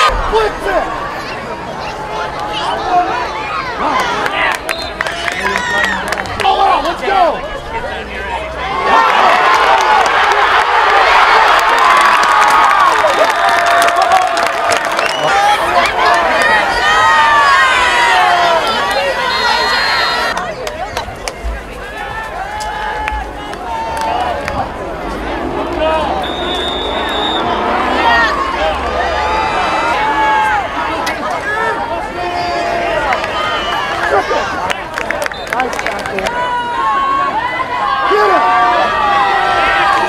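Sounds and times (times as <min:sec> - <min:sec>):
din of many voices: 0:00.0 - 0:11.8, 0:12.7 - 0:40.0
stadium crowd cheering and shouting: 0:00.0 - 0:40.0.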